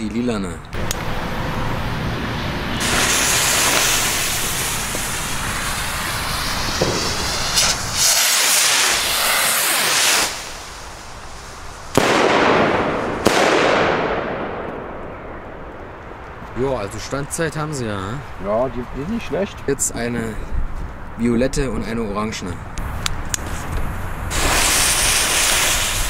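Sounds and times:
firework rockets hissing: 2.6s - 14.9s, 22.8s - 26.0s
firework shells bursting: 2.8s - 16.4s, 24.3s - 26.0s.

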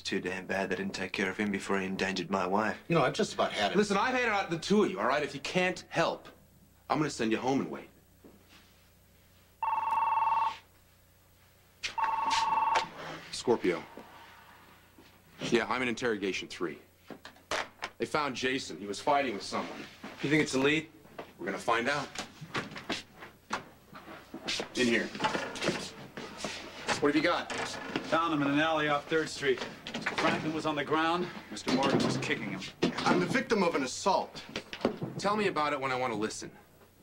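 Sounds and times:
footsteps and shuffling: 8.2s - 9.6s, 10.4s - 15.6s, 19.3s - 27.1s
desk telephone ringing: 9.6s - 10.7s, 12.0s - 13.0s.

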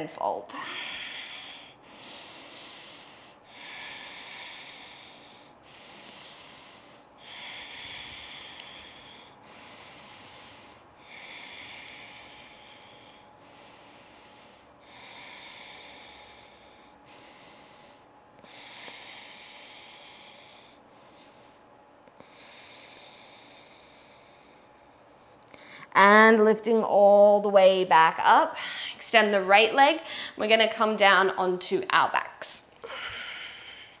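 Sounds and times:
woman breathing slowly: 0.5s - 26.0s, 28.2s - 30.4s, 32.8s - 34.0s.

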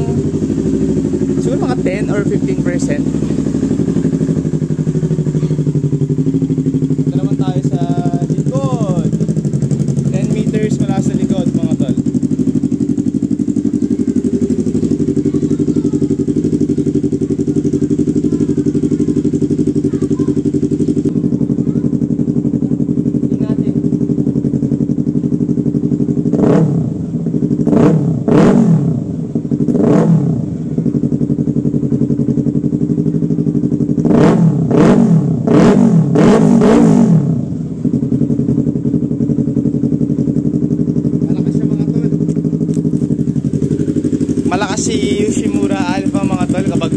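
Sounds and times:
motorcycle engine idling: 0.0s - 46.9s
motorcycle engine revving: 0.0s - 46.9s.

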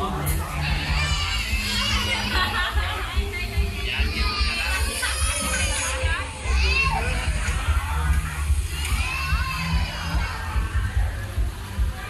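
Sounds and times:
children calling out and chattering: 0.0s - 12.0s
crowd chatter: 0.0s - 12.0s
steady low rumble: 6.0s - 12.0s.

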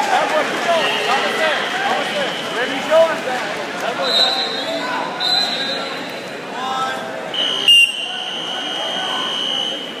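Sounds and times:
voices in gym: 0.0s - 10.0s.

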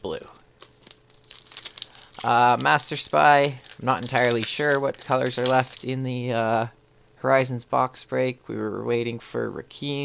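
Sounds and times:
foil wrapper crinkling: 0.6s - 6.1s.

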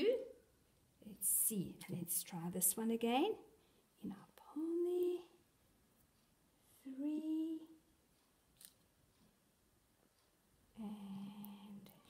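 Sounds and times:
woman humming: 10.8s - 11.9s.

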